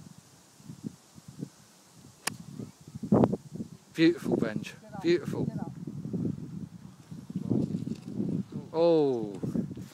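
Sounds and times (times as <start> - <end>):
golf club striking ball: 2.2 - 2.5.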